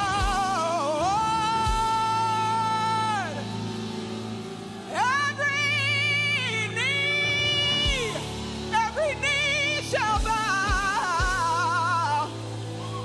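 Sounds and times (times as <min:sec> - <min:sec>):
woman singing: 0:00.0 - 0:03.6, 0:04.8 - 0:13.0
bass guitar: 0:00.0 - 0:13.0.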